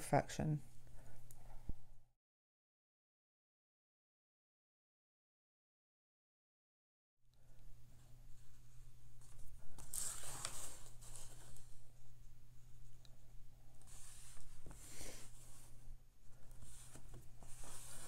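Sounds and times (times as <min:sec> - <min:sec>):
brush stroking paint on paper: 0:13.8 - 0:18.0.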